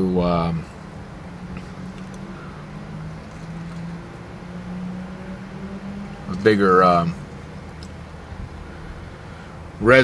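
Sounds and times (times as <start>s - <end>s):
engine and fan hum: 0.0s - 10.0s.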